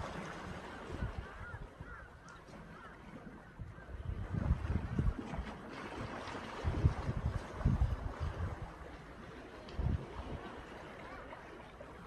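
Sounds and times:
sea water washing: 0.0s - 12.0s
wind buffeting microphone: 0.0s - 12.0s
faint bird calls: 0.9s - 4.0s.

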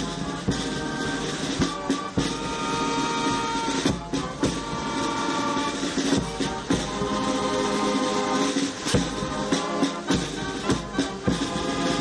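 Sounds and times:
brass band chords: 0.0s - 12.0s.

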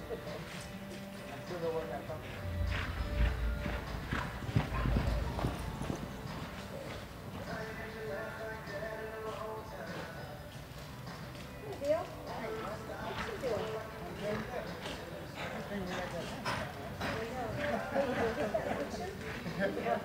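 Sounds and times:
faint voices: 0.0s - 10.6s, 11.4s - 20.0s
background music: 0.0s - 20.0s
horse hoofbeats on dirt: 0.3s - 20.0s.

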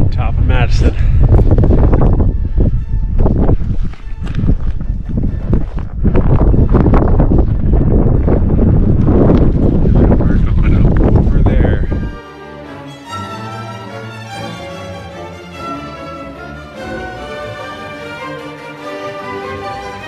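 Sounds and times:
wind buffeting microphone: 0.0s - 12.2s.

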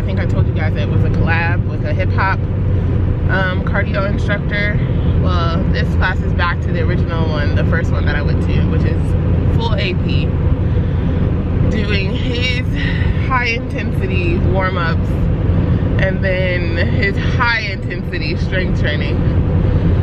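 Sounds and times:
woman talking: 0.0s - 2.4s, 3.3s - 10.3s, 11.6s - 15.2s, 16.0s - 19.3s
engine and tyre rumble: 0.0s - 20.0s.

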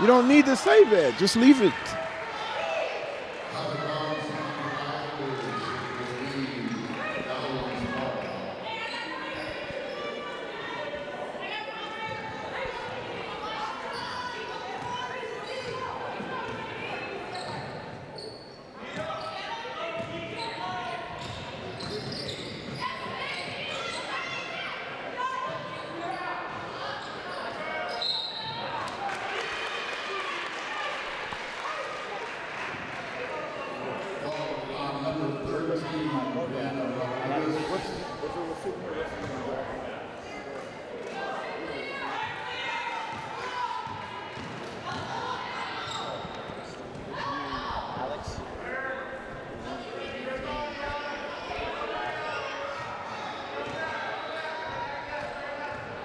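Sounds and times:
voices calling out echoing: 0.0s - 17.4s.

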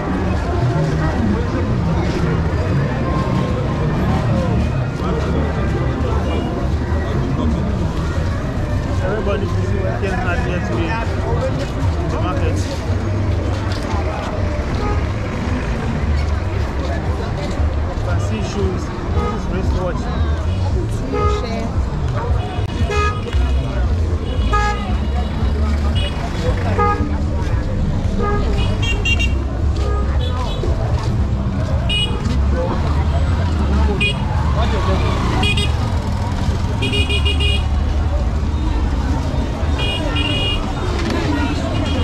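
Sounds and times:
car traffic: 0.0s - 42.0s
many people talking: 0.0s - 42.0s.

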